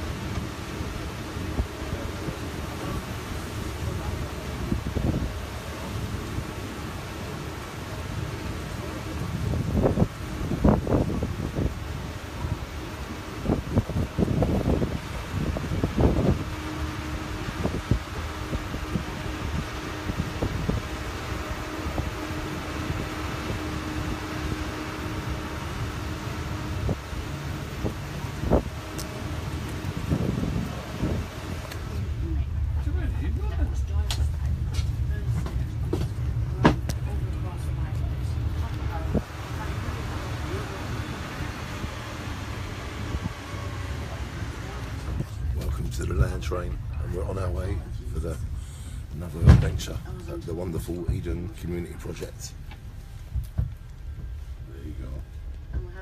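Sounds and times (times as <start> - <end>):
land train rumbling: 0.0 - 56.0
steady hum: 0.0 - 56.0.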